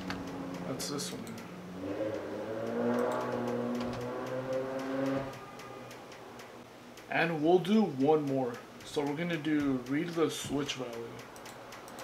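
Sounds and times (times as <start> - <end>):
keyboard and mouse clicks: 0.0 - 7.1, 8.0 - 12.0.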